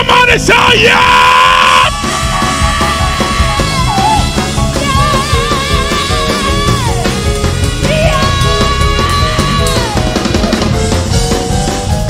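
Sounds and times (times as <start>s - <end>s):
person shouting yeah: 0.0s - 7.1s, 7.8s - 10.2s
live band music with guitar: 1.4s - 12.0s.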